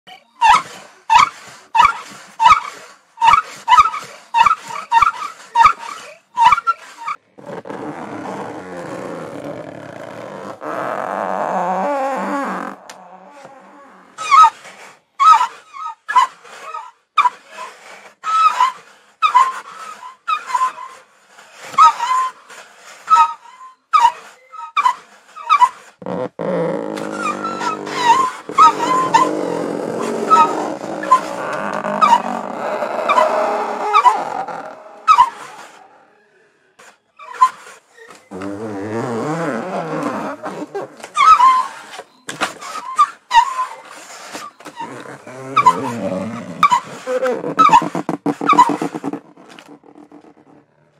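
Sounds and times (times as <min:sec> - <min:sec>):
cardboard rubbed seagull cries: 0:23.1 - 0:35.9, 0:38.3 - 0:42.0, 0:42.6 - 0:50.6.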